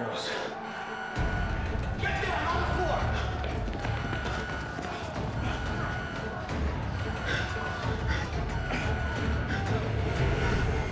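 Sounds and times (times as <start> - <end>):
dramatic action music: 0.5 - 10.9.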